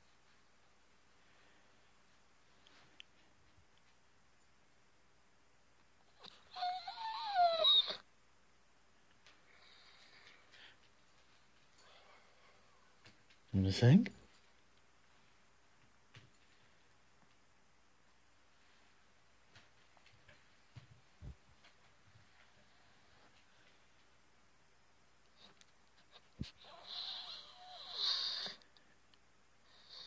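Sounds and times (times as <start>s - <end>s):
dog howling: 6.3s - 8.0s.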